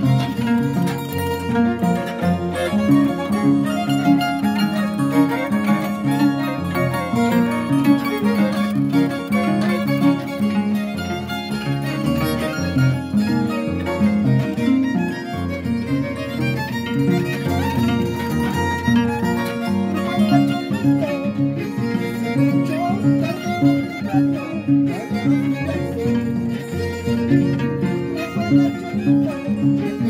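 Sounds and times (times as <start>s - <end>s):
harp playing: 0.0s - 30.0s
violin playing: 0.0s - 30.0s.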